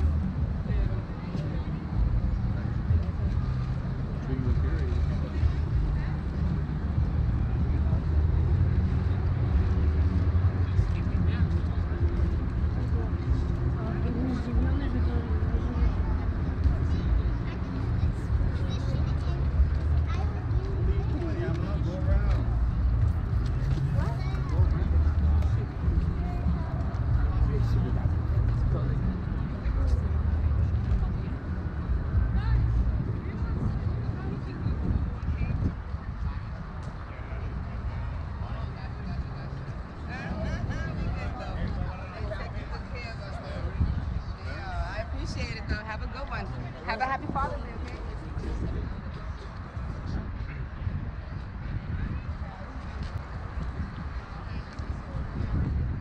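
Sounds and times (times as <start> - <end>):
faint voices: 0.0 - 56.0
low street rumble: 0.0 - 56.0
passers-by talking: 0.0 - 56.0.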